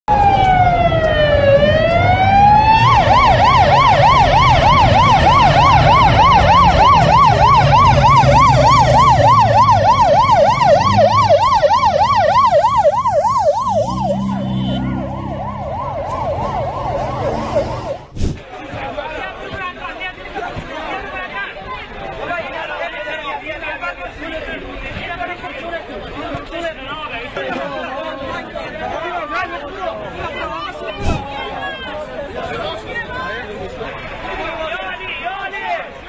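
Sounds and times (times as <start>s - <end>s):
ambulance siren: 0.1s - 18.1s.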